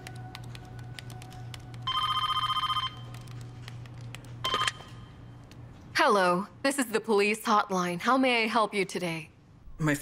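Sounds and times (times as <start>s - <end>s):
telephone ringing: 1.9s - 3.1s, 4.4s - 5.0s.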